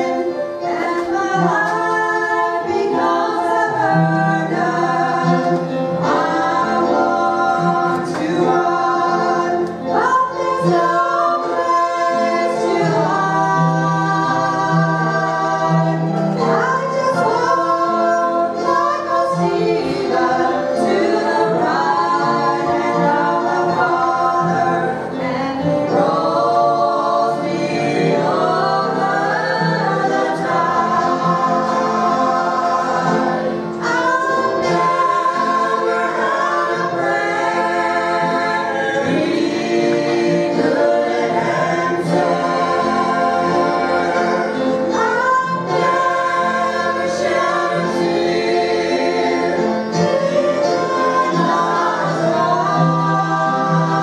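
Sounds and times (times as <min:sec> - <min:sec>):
vocal group singing in harmony: 0:00.0 - 0:54.0.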